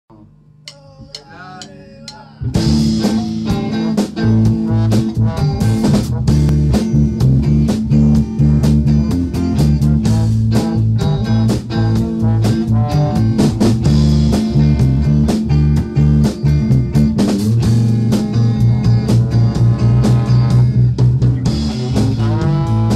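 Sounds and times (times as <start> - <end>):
drum kit: 0.1 - 22.9
electric guitar: 1.2 - 22.9.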